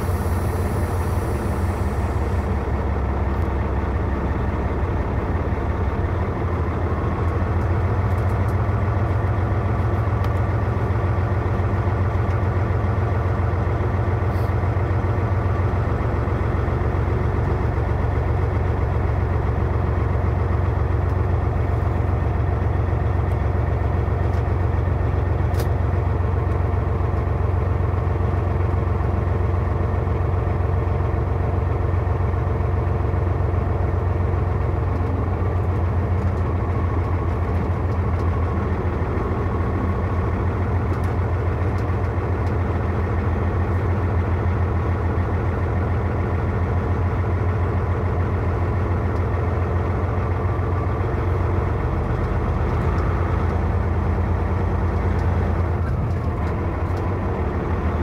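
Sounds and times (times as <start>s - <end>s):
truck engine running: 0.0s - 58.0s.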